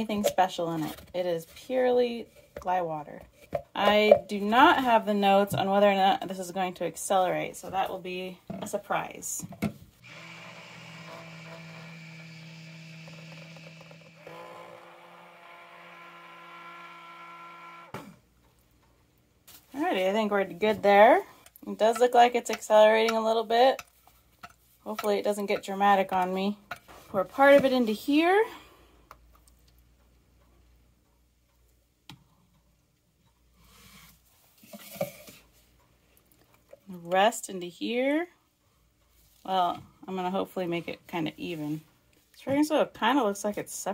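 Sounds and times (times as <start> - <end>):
stick blender motor running: 10.0 - 18.0.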